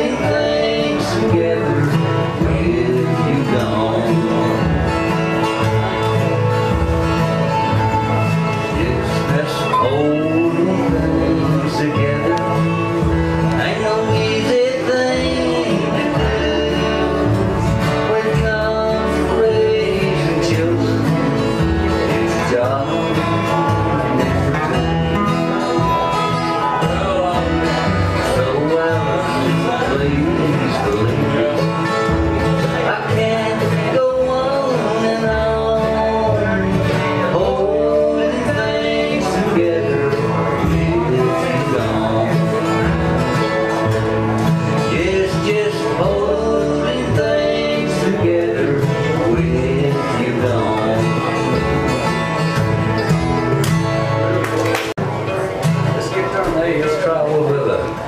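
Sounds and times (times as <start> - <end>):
acoustic guitars: 0.0 - 58.0
slide lap guitar: 0.0 - 58.0
upright bass: 0.0 - 58.0.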